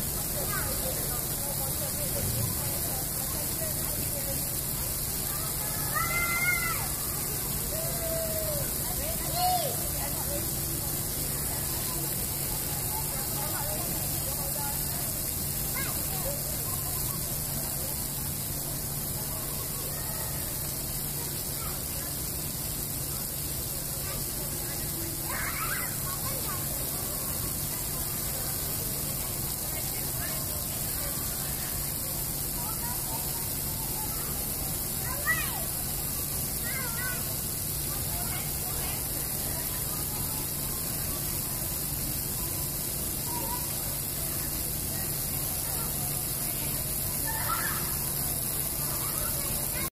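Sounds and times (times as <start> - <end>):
water jets spraying: 0.0 - 49.9.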